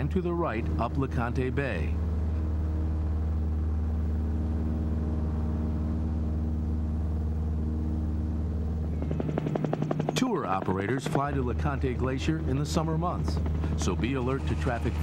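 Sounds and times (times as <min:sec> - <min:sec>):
aircraft engine drone: 0:00.0 - 0:15.0
helicopter rotor chop: 0:00.0 - 0:15.0.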